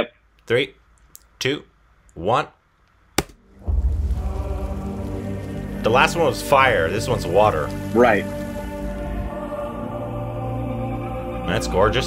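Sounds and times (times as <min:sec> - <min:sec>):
deep low rumble: 0:03.4 - 0:09.4.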